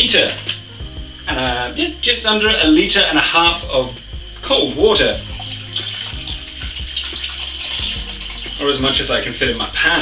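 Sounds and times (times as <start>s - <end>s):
water pouring into a saucepan: 4.9s - 9.7s.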